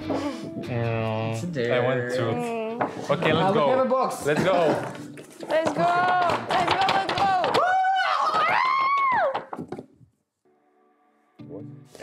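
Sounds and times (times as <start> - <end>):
faint background music: 0.0 - 8.2.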